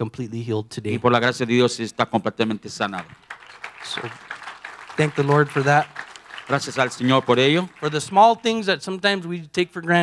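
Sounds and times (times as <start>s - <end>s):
congregation applauding softly: 2.8s - 8.6s.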